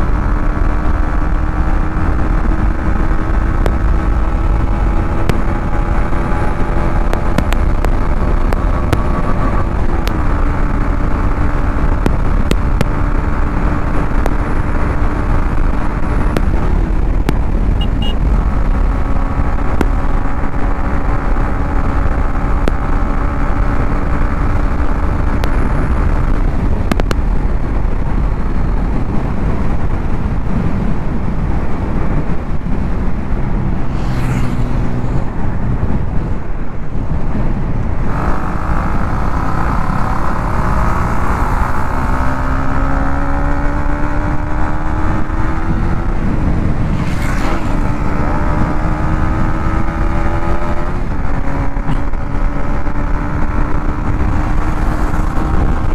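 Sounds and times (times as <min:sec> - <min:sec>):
motorcycle engine running: 0:00.0 - 0:55.9
wind rumble on microphone: 0:00.0 - 0:55.9.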